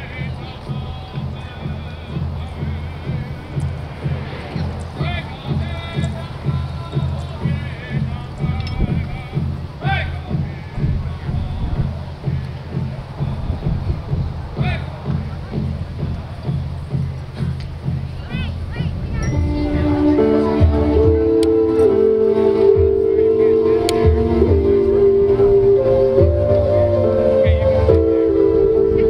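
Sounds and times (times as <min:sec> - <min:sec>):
steady drumbeat: 0:00.0 - 0:28.9
high voices singing: 0:00.0 - 0:29.0.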